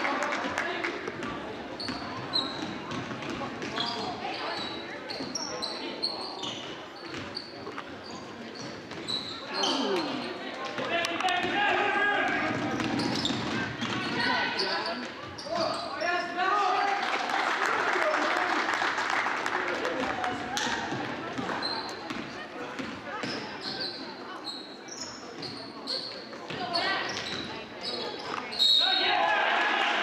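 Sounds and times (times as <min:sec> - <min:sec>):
sneakers squeaking on hardwood: 0:01.8 - 0:10.8, 0:12.4 - 0:16.3, 0:21.4 - 0:28.8.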